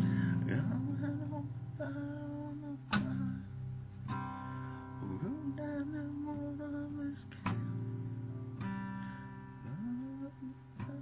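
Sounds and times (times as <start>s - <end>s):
acoustic guitar strum: 0.0s - 11.0s.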